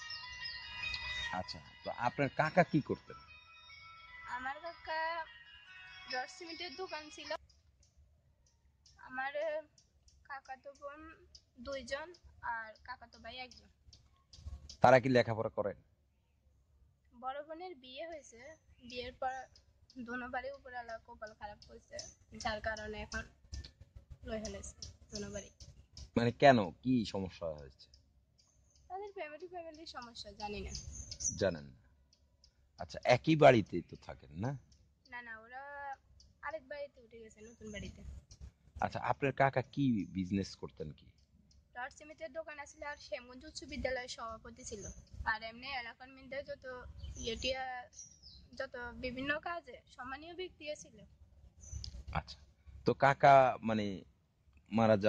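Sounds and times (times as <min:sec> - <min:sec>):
conversational speech: 0:01.2 - 0:03.2, 0:04.3 - 0:07.4, 0:09.0 - 0:09.6, 0:10.3 - 0:13.6, 0:14.8 - 0:15.7, 0:17.2 - 0:23.2, 0:24.3 - 0:25.5, 0:26.2 - 0:27.8, 0:28.9 - 0:31.7, 0:32.8 - 0:34.6, 0:35.2 - 0:38.0, 0:38.8 - 0:41.0, 0:41.8 - 0:47.9, 0:48.6 - 0:51.0, 0:52.9 - 0:54.0, 0:54.7 - 0:55.0
woman speaking: 0:04.3 - 0:07.4, 0:09.0 - 0:09.7, 0:10.3 - 0:13.7, 0:17.2 - 0:23.2, 0:24.3 - 0:25.5, 0:28.9 - 0:30.8, 0:35.1 - 0:38.0, 0:41.8 - 0:47.9, 0:48.5 - 0:51.0
faint high-pitched clicks: 0:51.8 - 0:52.4.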